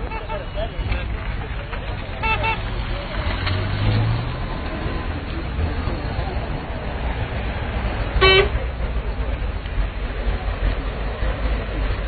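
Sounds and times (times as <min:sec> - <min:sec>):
vehicle horn toot: 0:00.0 - 0:00.7, 0:02.2 - 0:02.6, 0:08.2 - 0:08.6.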